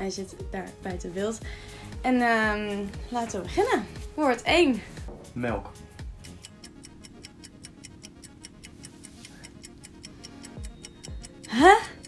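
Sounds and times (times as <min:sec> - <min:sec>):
low musical drone: 0:04.9 - 0:12.0
rapid even ticking: 0:05.2 - 0:12.0.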